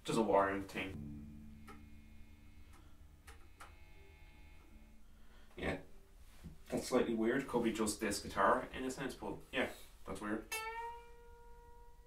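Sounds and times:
electric guitar notes picked softly: 0.7s - 6.9s, 10.5s - 12.0s.

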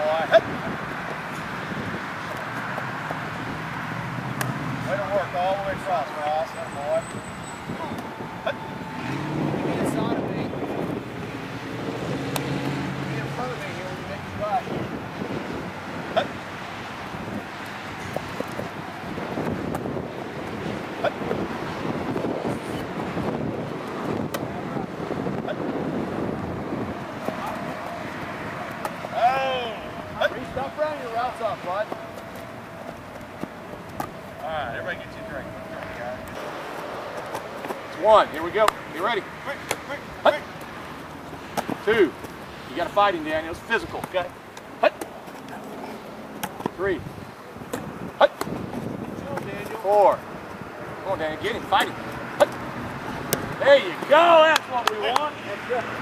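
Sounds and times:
distant voices talking: 0.0s - 15.2s, 24.1s - 56.0s.

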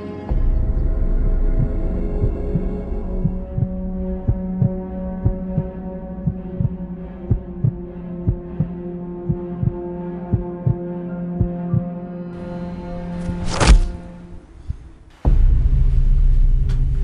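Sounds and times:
sustained low drone: 0.0s - 17.0s
heartbeat-like double thump: 1.6s - 10.8s.

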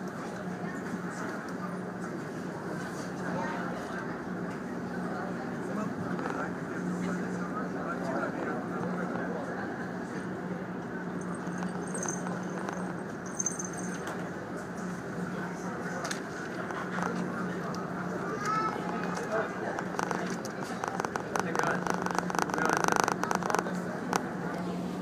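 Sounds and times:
ferry engines humming: 0.0s - 25.0s
murmur of voices: 0.0s - 25.0s.

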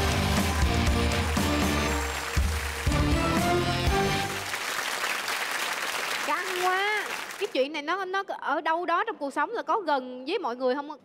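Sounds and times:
studio audience applauding: 0.0s - 7.6s.

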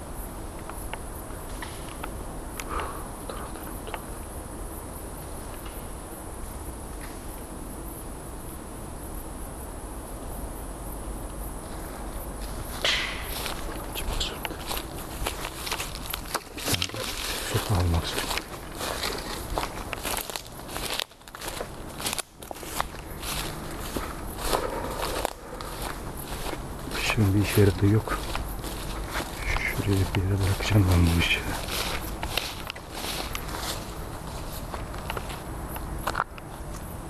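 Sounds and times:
crickets chirring: 0.0s - 37.0s
leaves rustling: 11.5s - 36.9s
footsteps through undergrowth: 11.6s - 36.9s
twigs snapping: 14.4s - 26.6s, 31.6s - 33.8s.

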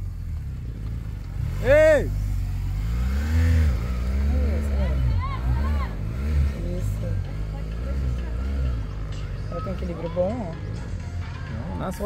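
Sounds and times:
motorcycle engine revving: 0.0s - 12.0s
voices calling out: 3.6s - 12.0s.

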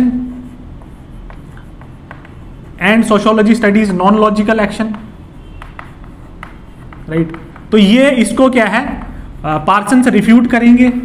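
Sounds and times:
chalk writing on chalkboard: 0.0s - 11.0s
man talking: 2.8s - 5.1s, 7.1s - 11.0s.

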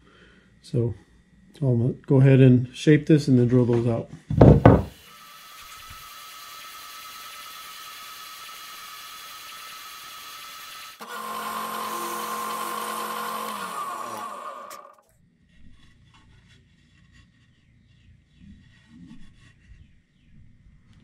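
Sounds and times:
drill press boring holes: 4.4s - 15.0s
spindle sander running: 4.4s - 15.0s
motor winding down: 4.6s - 15.0s.

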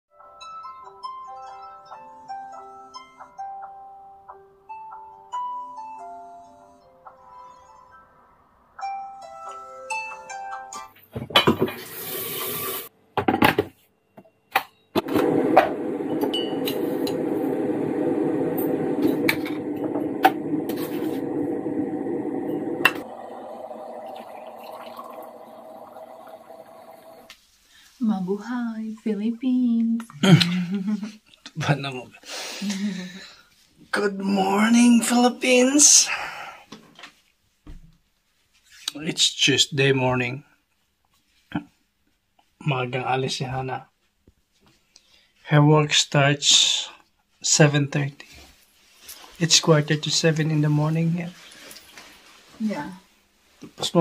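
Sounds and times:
water boiling in a kettle: 11.5s - 12.9s, 15.0s - 27.3s.

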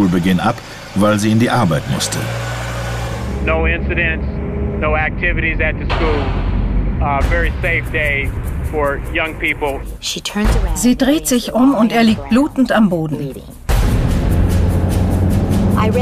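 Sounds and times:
car interior low rumble: 3.4s - 10.0s
person talking: 7.0s - 13.6s.

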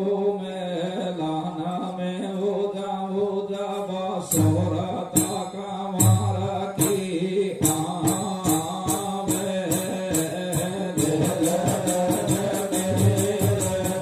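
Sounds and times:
man singing into a microphone: 0.0s - 14.0s
instrumental accompaniment: 4.3s - 14.0s
sharp percussion strokes: 4.3s - 14.0s.

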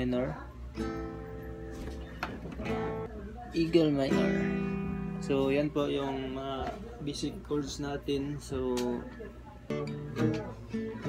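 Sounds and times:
acoustic guitar chord strummed: 0.7s - 6.4s, 9.7s - 11.0s.

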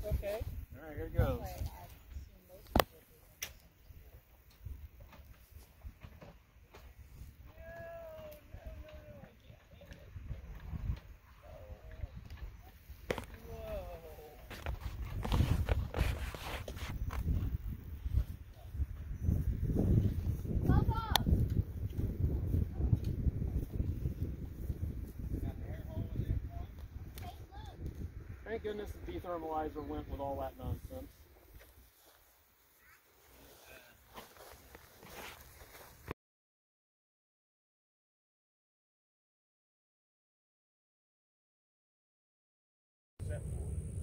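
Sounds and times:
wind rumble on microphone: 0.0s - 2.4s, 7.0s - 31.6s.

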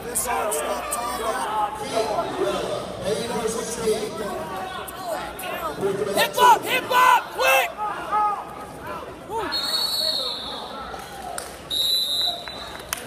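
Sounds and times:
referee whistle blasts: 9.5s - 10.7s, 11.7s - 12.6s.

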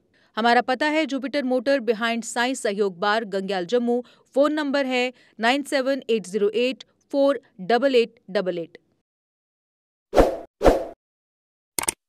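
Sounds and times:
quick clicks: 11.8s - 12.0s.

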